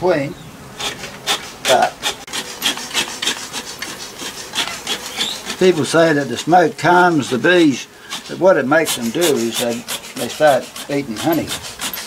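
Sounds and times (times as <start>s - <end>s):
rubbing and scraping: 0.8s - 12.0s.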